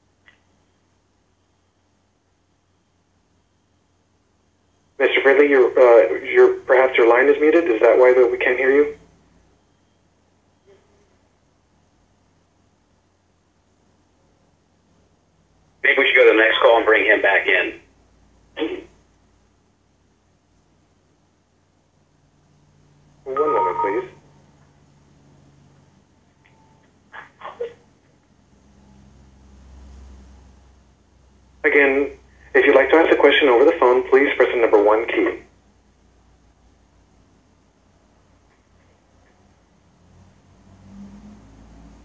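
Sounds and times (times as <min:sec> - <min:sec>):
voice talking over telephone: 0:05.0 - 0:09.0, 0:15.8 - 0:17.9, 0:18.6 - 0:18.9, 0:23.3 - 0:24.2, 0:27.1 - 0:27.8, 0:31.6 - 0:35.5.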